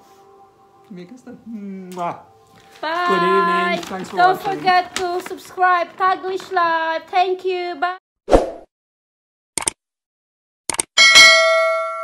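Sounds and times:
notification bell ding: 11.0s - 12.0s.

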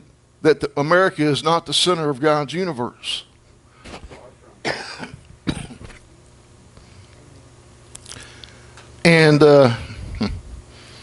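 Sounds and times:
man coughing: 4.6s - 6.0s.

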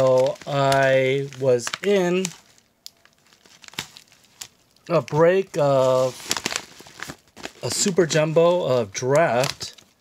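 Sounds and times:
padded envelope crinkling: 0.0s - 10.0s.

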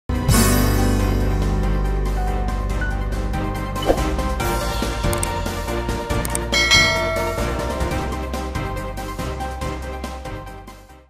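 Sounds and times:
background music: 0.1s - 11.0s
bright chime: 6.6s - 8.2s.

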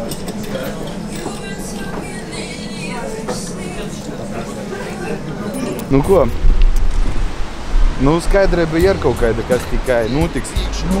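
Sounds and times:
faint music: 0.0s - 6.6s, 7.9s - 11.0s
indistinct background voices: 0.0s - 11.0s.

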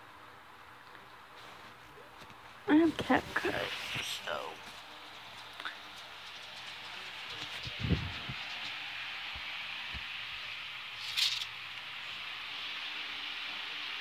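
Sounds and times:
steady hiss: 0.0s - 14.0s.

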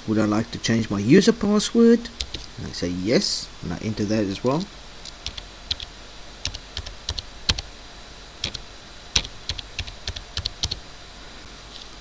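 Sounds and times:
computer keyboard typing: 2.2s - 2.5s, 5.0s - 7.7s, 8.4s - 8.6s, 9.2s - 10.8s.

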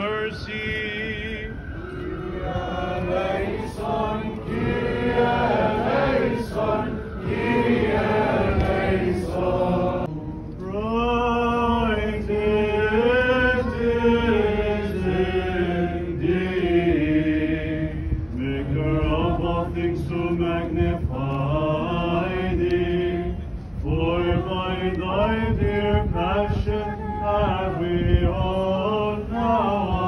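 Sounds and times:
group singing chant in unison: 0.0s - 30.0s.

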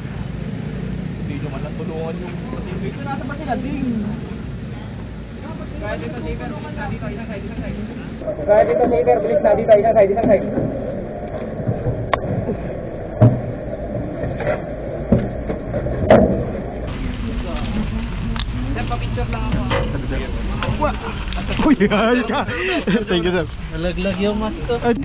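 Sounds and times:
men chattering: 0.0s - 8.2s, 16.9s - 25.0s
truck engine rumbling: 0.0s - 8.3s, 10.7s - 25.0s.

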